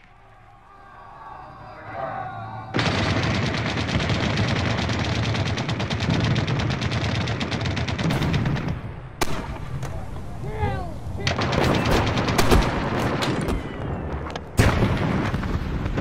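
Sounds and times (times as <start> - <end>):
falling whistling tones: 0.0 - 2.8
machine-gun fire: 2.8 - 9.5.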